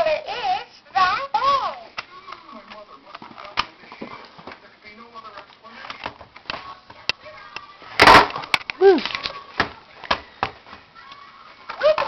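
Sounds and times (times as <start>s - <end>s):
soft indistinct voice: 8.8s - 10.0s.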